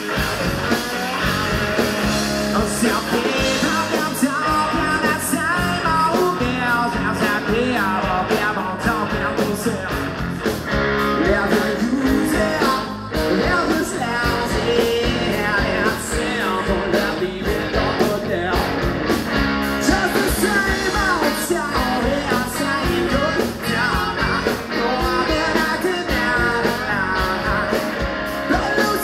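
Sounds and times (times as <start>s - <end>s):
rock band playing live: 0.0s - 29.0s.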